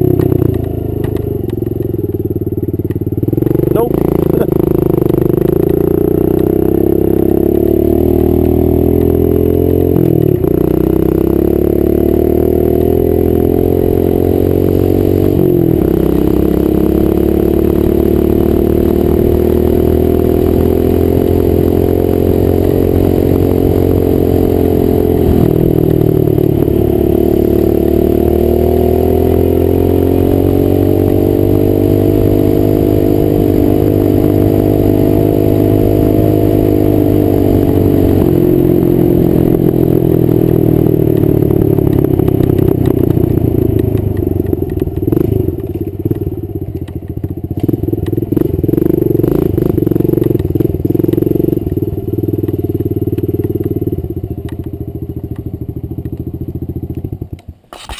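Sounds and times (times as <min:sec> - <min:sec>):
dirt bike engine revving: 0:03.1 - 0:46.2, 0:47.6 - 0:54.0, 0:56.4 - 0:57.9.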